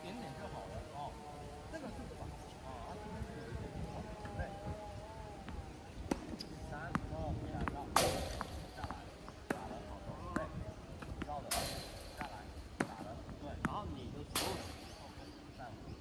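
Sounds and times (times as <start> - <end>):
faint voices: 0.0 - 16.0
tennis balls struck with rackets: 5.4 - 15.6.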